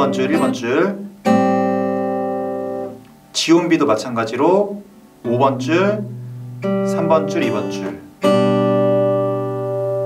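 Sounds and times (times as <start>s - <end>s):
acoustic guitar chord ringing: 0.0s - 10.0s.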